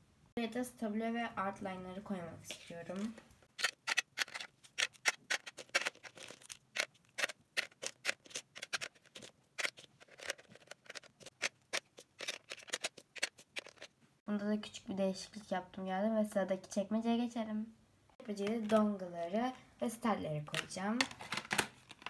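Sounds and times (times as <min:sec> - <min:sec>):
plastic pens clicking into drawer: 0:03.6 - 0:13.9.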